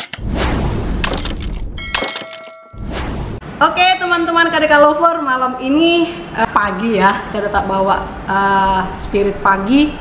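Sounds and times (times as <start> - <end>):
noisy whoosh wash: 0.2 - 1.2, 2.8 - 3.8
sudden impact hits: 0.2 - 2.0.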